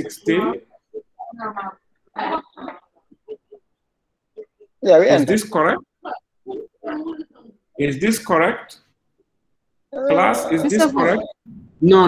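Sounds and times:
garbled voice over video call: 0.0 - 9.0, 9.9 - 12.0.

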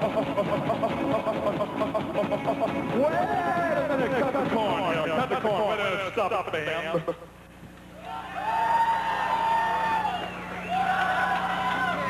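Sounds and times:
steady low hum: 0.0 - 12.0
concert audience cheering: 8.0 - 12.0
long whoops: 8.0 - 12.0.

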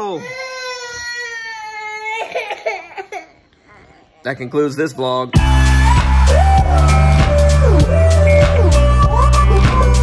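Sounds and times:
young child crying: 0.0 - 3.9.

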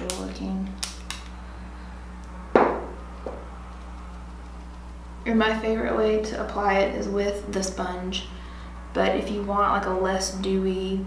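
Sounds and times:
sharp knock on a surface: 2.6 - 3.4.

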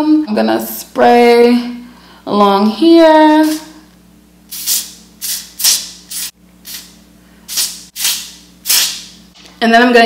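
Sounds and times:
aerosol spray hissing bursts: 4.5 - 9.1.

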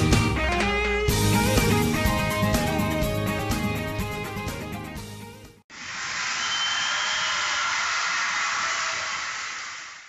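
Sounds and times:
steady hiss: 5.7 - 10.0.

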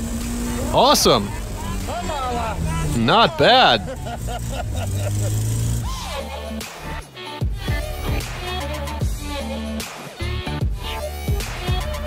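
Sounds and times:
car engine running: 0.0 - 7.0
men laughing: 0.7 - 6.6.

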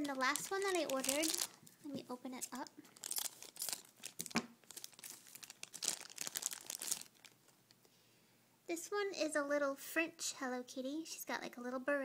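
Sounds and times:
wrapper crinkling and tearing: 0.0 - 1.7, 2.4 - 7.6.

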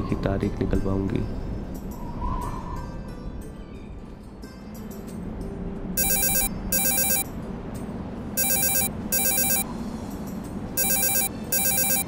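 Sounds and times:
phone ringing: 6.0 - 7.2, 8.4 - 9.7, 10.8 - 12.0.

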